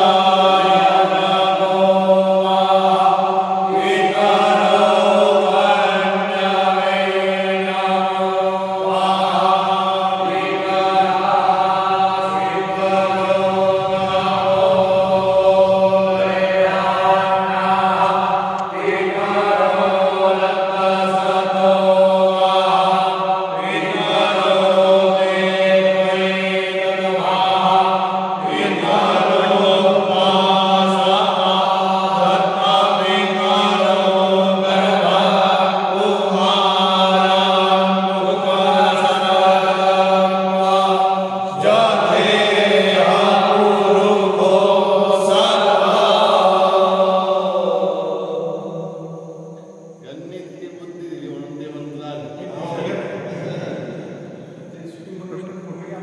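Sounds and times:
steady low drone: 0.0 - 56.0
voices chanting in unison: 0.0 - 56.0.

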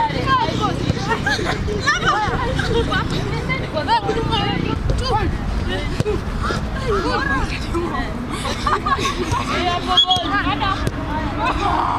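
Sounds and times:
players calling and shouting: 0.0 - 11.9.

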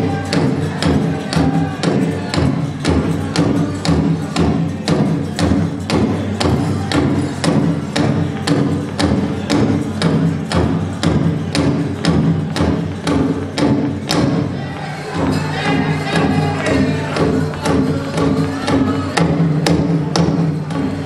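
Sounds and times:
big drum beat: 0.0 - 21.0
drum group singing: 0.0 - 21.0.

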